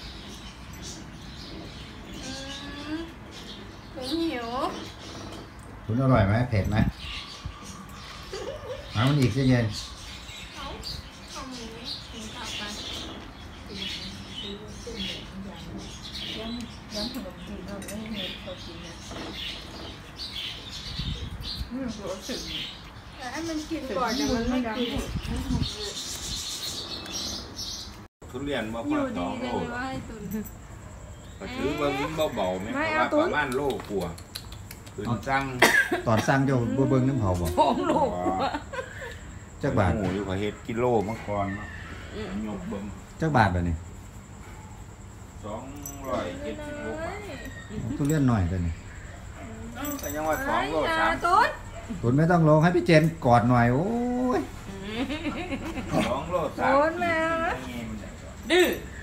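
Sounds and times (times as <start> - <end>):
birds chirping: 0.0 - 59.0.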